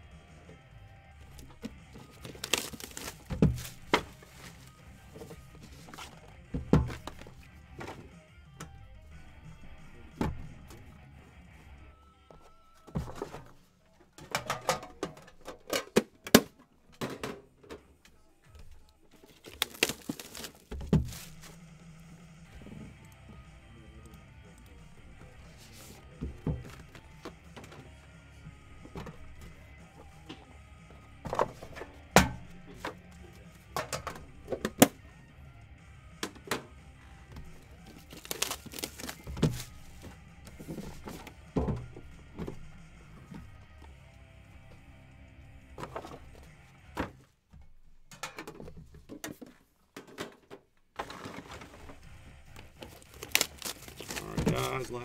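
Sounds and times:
background music: 0:00.0 - 0:48.8, 0:51.0 - 0:55.0
cardboard boxes knocking on table: 0:02.4 - 0:04.4, 0:05.9 - 0:08.1, 0:19.7 - 0:21.5, 0:38.2 - 0:42.7.

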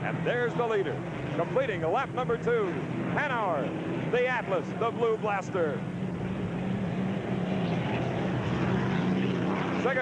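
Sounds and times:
aircraft engine droning: 0:00.0 - 0:10.0.

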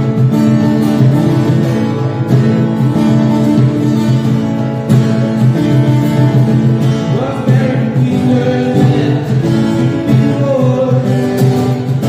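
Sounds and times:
hand drum: 0:00.0 - 0:12.0
strummed acoustic guitars: 0:00.0 - 0:12.0
man singing: 0:06.9 - 0:12.0.

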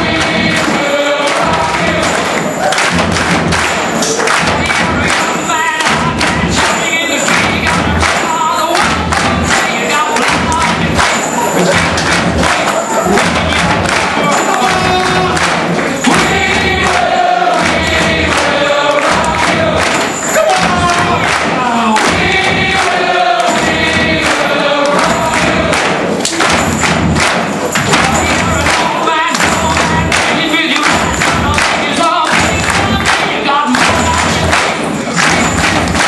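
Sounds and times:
singing voices: 0:00.0 - 0:36.0
steady music beat: 0:00.0 - 0:36.0.

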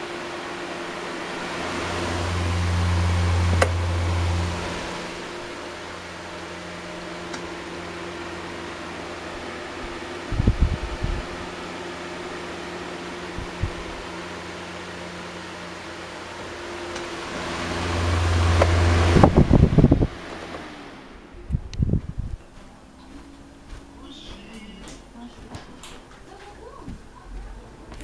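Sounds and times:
desk fan motor hum: 0:00.0 - 0:28.0
air buffeting microphone: 0:09.8 - 0:11.5, 0:18.2 - 0:20.3, 0:21.4 - 0:28.0.

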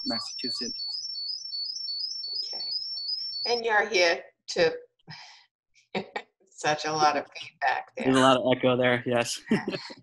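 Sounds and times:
audio feedback whistle: 0:00.0 - 0:03.5
faint low hum: 0:08.0 - 0:10.0.

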